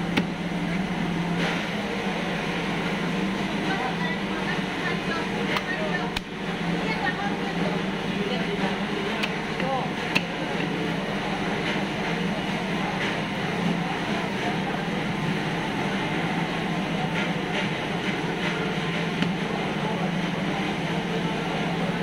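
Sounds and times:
busy fish market din: 0:00.0 - 0:22.0.

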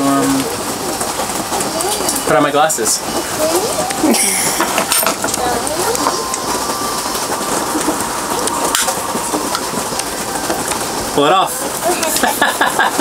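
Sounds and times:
rain hissing: 0:00.0 - 0:13.0
faint talk: 0:01.4 - 0:07.0.

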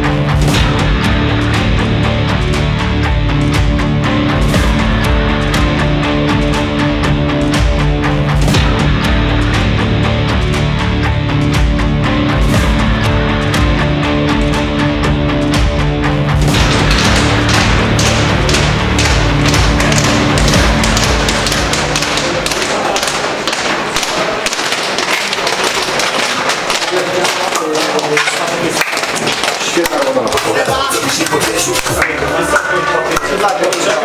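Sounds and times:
background music: 0:00.0 - 0:34.0
studded boots tapping on tiles: 0:16.6 - 0:32.1
voices of players: 0:22.3 - 0:34.0.

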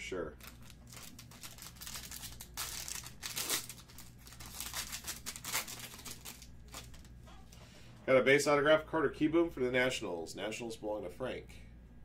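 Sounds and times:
foil wrapper tearing and crinkling: 0:00.4 - 0:07.1.

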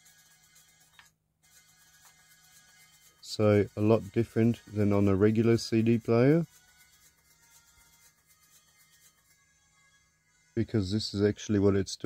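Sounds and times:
cd recorder rewinding audio: 0:00.0 - 0:09.4.

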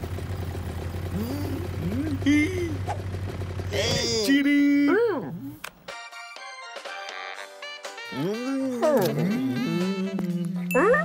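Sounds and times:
cartoon character vocal sounds: 0:01.1 - 0:02.8, 0:08.1 - 0:11.0.

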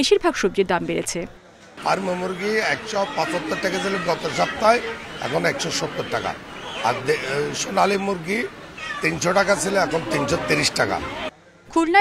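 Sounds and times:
man talking: 0:01.8 - 0:11.2.

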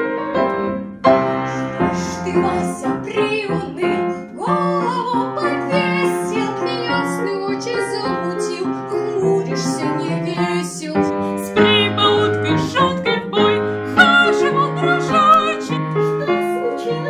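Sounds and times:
piano accompaniment: 0:00.0 - 0:17.0
girl singing: 0:01.4 - 0:17.0.

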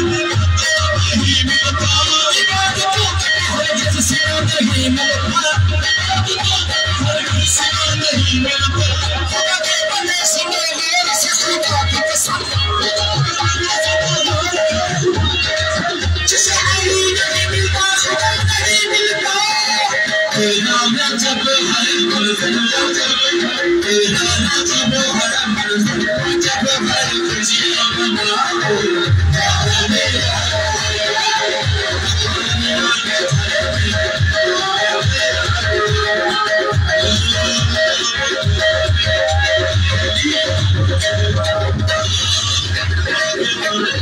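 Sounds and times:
live music over pa: 0:00.0 - 0:44.0
heavy drumbeats: 0:24.1 - 0:43.2.

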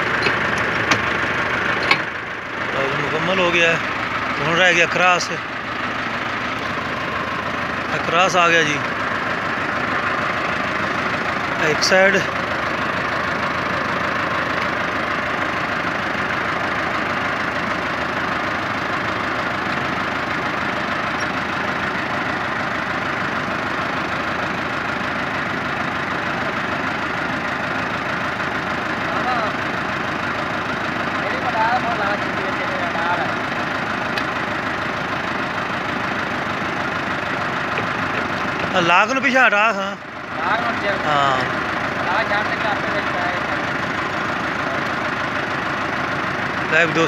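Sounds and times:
tractor diesel engine idling: 0:00.0 - 0:47.0.

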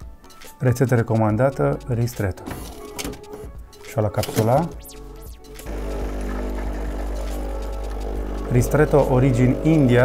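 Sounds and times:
coffee running into cup: 0:05.7 - 0:10.0
espresso machine pump humming: 0:05.7 - 0:10.0.

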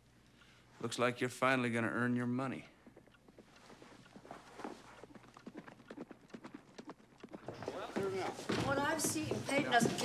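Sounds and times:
horse hooves clip-clop: 0:02.2 - 0:10.0.

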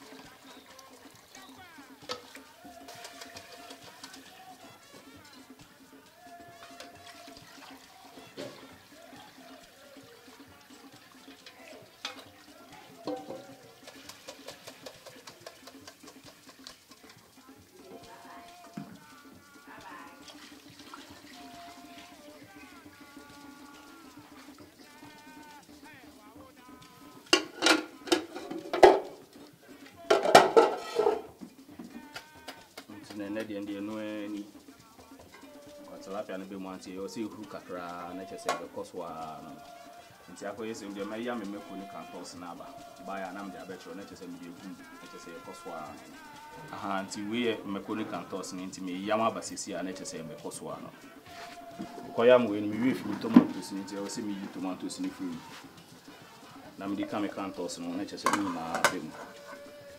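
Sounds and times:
background music: 0:00.0 - 0:59.9
liquid pouring through a colander: 0:00.0 - 0:59.9
voices: 0:00.0 - 0:59.9.

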